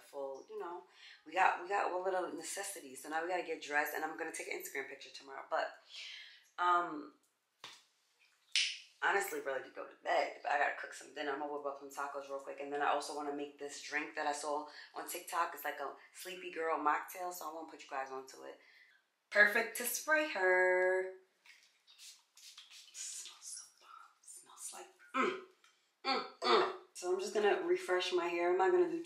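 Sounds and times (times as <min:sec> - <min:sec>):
pump spray bottle hissing: 0:21.9 - 0:23.2
person speaking: 0:26.1 - 0:29.0.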